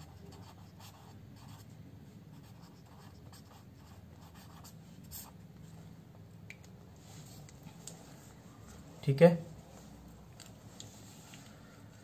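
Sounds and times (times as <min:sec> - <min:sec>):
pen scratching on paper: 0:00.0 - 0:01.7, 0:02.3 - 0:05.4.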